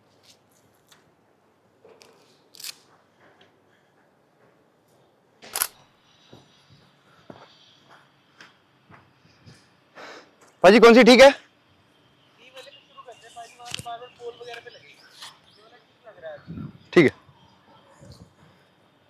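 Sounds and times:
footsteps crunching on dirt: 0:06.2 - 0:09.6.

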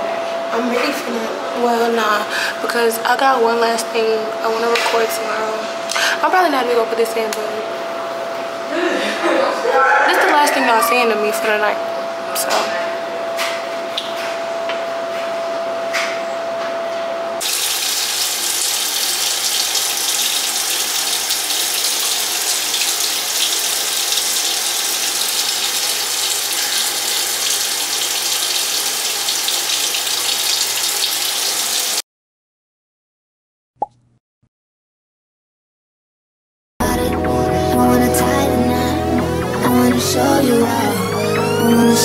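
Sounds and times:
steady high tone: 0:09.6 - 0:13.8, 0:36.8 - 0:42.0
water running: 0:17.4 - 0:32.0.

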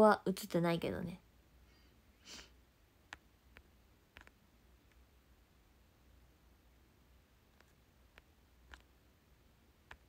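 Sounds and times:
sniff through nose: 0:02.2 - 0:02.6
faint clicks: 0:03.1 - 0:05.1, 0:07.5 - 0:09.0.

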